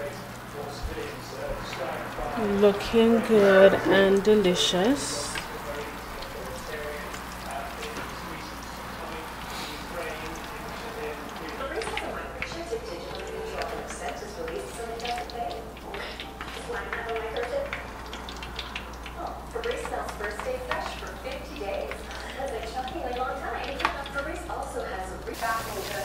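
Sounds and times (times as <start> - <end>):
dumplings crackling in hot oil: 0.0 - 26.0.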